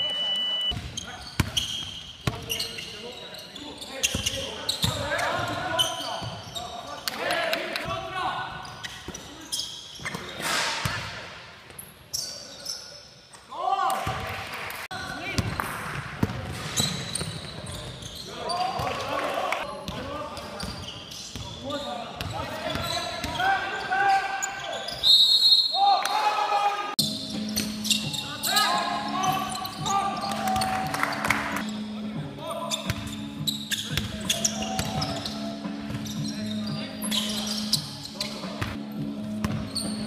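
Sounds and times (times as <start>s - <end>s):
sneakers squeaking: 0.0s - 7.2s, 7.9s - 14.3s, 15.1s - 26.2s, 27.0s - 40.0s
players calling out: 20.4s - 32.0s.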